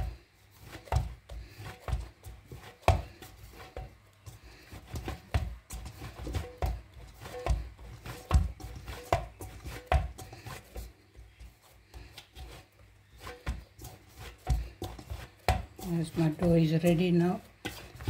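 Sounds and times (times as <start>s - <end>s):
dough rubbing: 0.0s - 18.0s
dough thumping in metal bowl: 0.0s - 18.0s.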